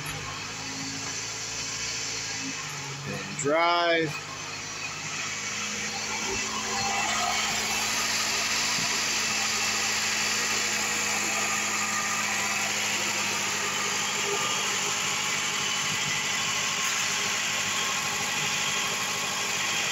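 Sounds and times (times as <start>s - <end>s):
car engine idling: 0.0s - 19.9s.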